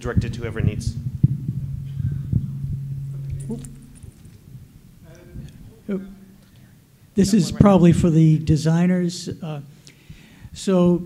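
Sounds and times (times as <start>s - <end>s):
low electrical hum: 0.0s - 11.0s
microphone handling thumps: 0.2s - 5.8s.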